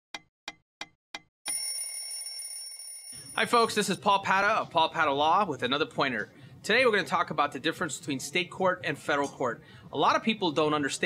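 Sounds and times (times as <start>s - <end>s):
bright high ringing chime: 1.5s - 4.0s.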